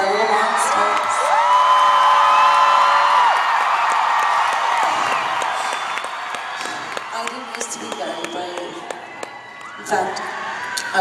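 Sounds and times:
crowd cheering and screaming: 0.0s - 11.0s.

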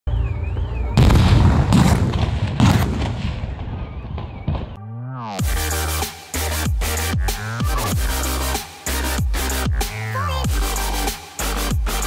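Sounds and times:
explosions with low rumble: 0.6s - 4.8s.

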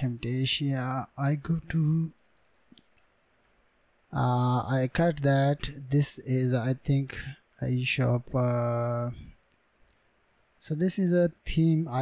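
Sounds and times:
quiet room hiss: 0.0s - 12.0s.

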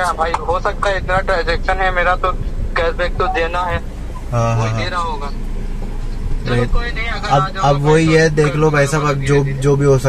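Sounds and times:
low car hum: 0.0s - 10.0s
men talking on phone: 0.0s - 10.0s.

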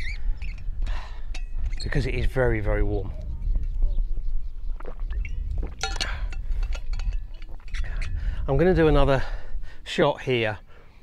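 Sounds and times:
wind rumble on microphone: 0.0s - 9.8s
person swallowing: 4.7s - 6.3s
metal bottle clinking: 5.2s - 8.2s.

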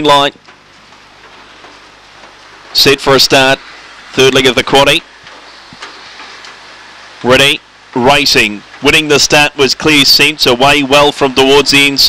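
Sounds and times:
low background hiss: 0.0s - 12.0s
faint clicks: 5.2s - 6.6s.

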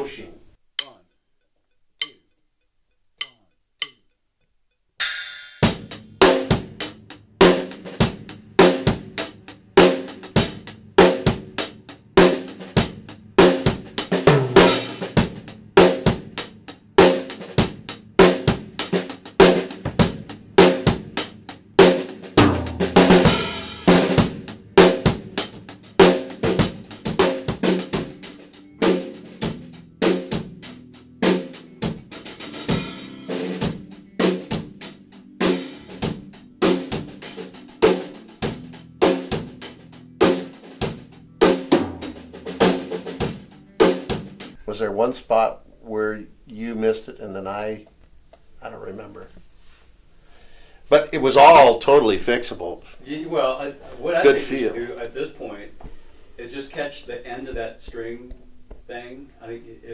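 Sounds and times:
rock drum kit groove: 5.0s - 45.5s, 47.6s - 59.9s
cymbal crashes: 14.2s - 16.3s.

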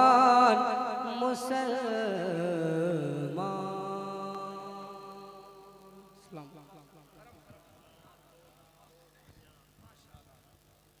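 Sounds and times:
faint steady hum: 0.0s - 11.0s
faint indistinct voices: 6.2s - 11.0s.

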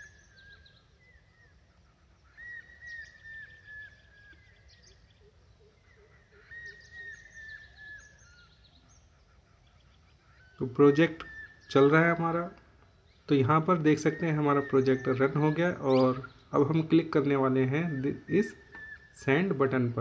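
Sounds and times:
bird calling: 0.0s - 20.0s.

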